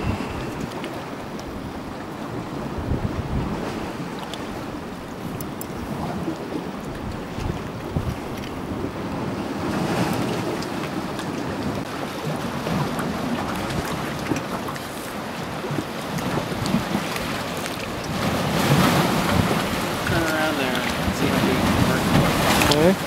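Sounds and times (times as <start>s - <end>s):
waves lapping against rocks: 0.0s - 23.0s
wind buffeting microphone: 0.0s - 23.0s.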